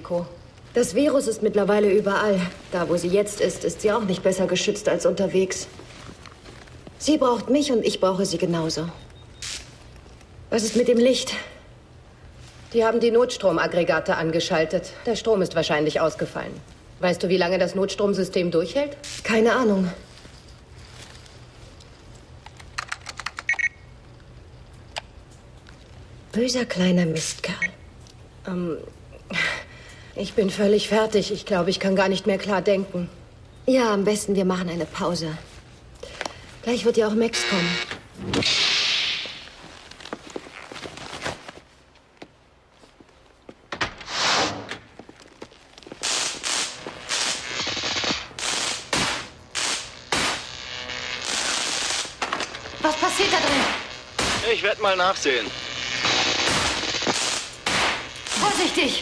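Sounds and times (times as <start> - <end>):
low steady hum: 0.0 - 38.5, 44.7 - 59.0
computer keyboard typing: 22.6 - 23.7.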